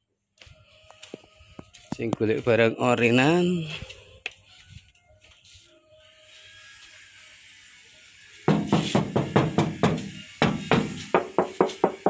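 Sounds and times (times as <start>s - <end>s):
knuckles knocking on sheet metal: 8.5s - 12.0s.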